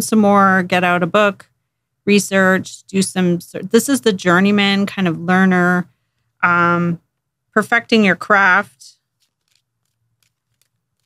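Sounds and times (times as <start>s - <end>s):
cards being shuffled: 9.1s - 11.0s.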